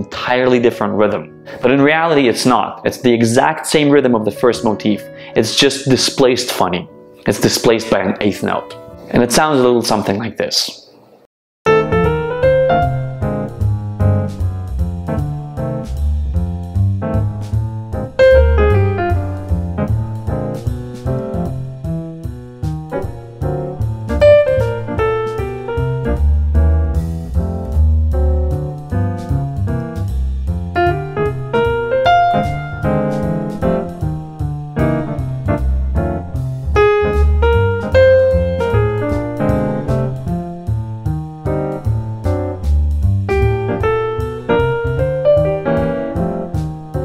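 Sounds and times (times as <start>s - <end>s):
jazz piano: 11.6s - 47.0s
deep bass notes: 11.7s - 47.0s
ticking beat: 11.7s - 47.0s.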